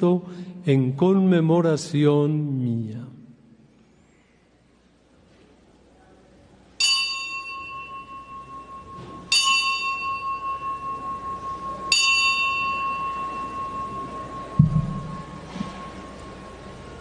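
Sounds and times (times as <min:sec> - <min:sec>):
altar bell ringing: 0:06.8 - 0:17.0
short low thump: 0:14.6 - 0:15.8.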